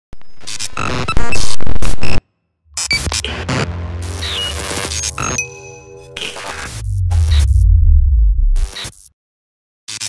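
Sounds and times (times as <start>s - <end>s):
chopped music and noise collage: 2.8s - 9.0s.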